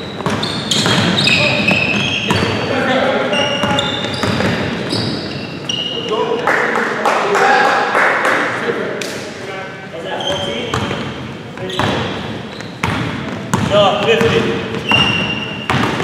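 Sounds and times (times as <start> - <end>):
basketball bouncing: 0.0 - 2.6, 3.6 - 4.8, 10.3 - 16.0
sneakers squeaking: 0.0 - 6.5, 10.0 - 16.0.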